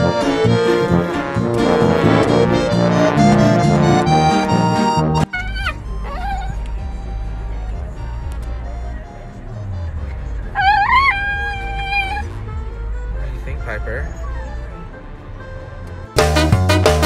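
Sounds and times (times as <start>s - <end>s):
accordion music: 0.0s - 17.0s
low rumble: 0.8s - 4.2s
dog whining: 5.2s - 6.9s, 10.5s - 12.4s.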